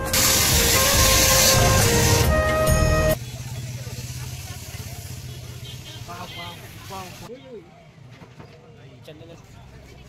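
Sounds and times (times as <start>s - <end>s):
people talking close by: 3.2s - 10.0s.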